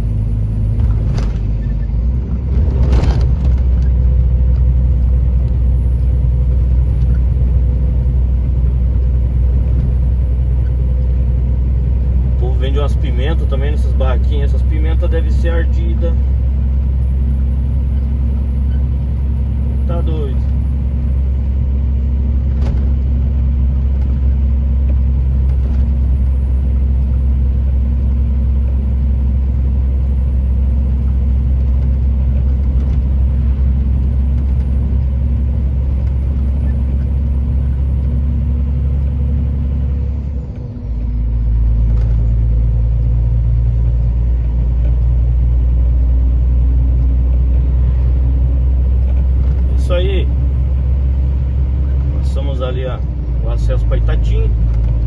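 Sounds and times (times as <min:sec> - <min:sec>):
truck engine drone: 0:00.0 - 0:55.0.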